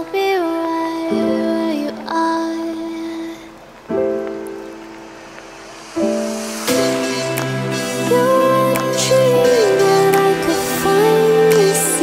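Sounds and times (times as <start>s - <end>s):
slow soft instrumental song: 0.0s - 12.0s.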